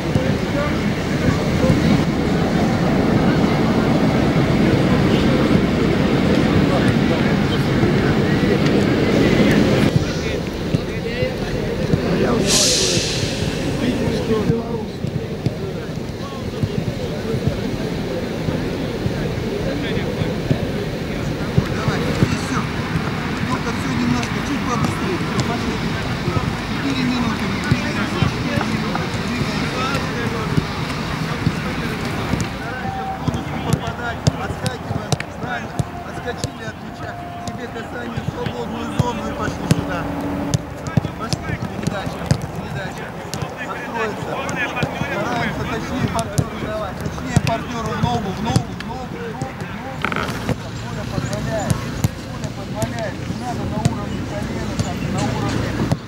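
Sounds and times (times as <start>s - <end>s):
indistinct voices talking: 0.0s - 56.0s
players calling: 0.0s - 56.0s
brief hissing burst: 12.3s - 14.5s.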